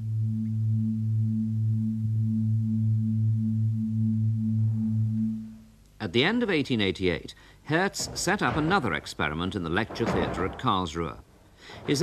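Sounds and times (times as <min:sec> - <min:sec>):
steady low humming tone: 0:00.0 - 0:06.0.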